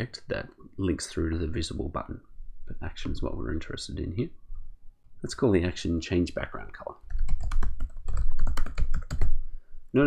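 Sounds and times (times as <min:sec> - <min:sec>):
rapid typing on keyboard: 0:07.0 - 0:09.4.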